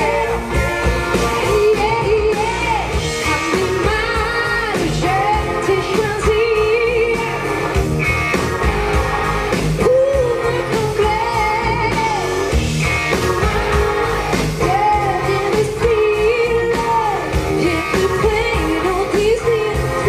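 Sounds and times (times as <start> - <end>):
bass guitar: 0.0 - 20.0
drum kit: 0.0 - 20.0
electric guitars: 0.0 - 20.0
woman singing: 1.4 - 7.5, 9.8 - 12.4, 14.6 - 20.0.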